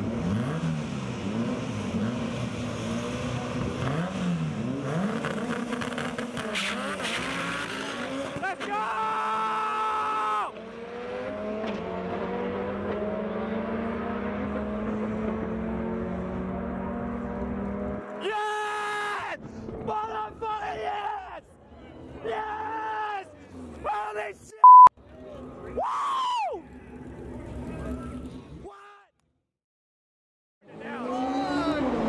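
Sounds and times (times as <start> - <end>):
race car engine accelerating: 0.0 - 8.4, 10.5 - 18.1
people shouting and yelling: 8.4 - 10.5, 18.2 - 24.6, 25.6 - 26.7
loud beep: 24.6 - 24.9.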